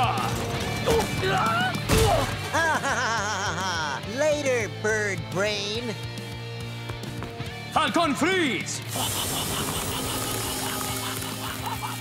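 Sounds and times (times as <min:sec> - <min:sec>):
background music with held notes: 0:00.0 - 0:12.0
cartoon spray hiss: 0:08.9 - 0:12.0.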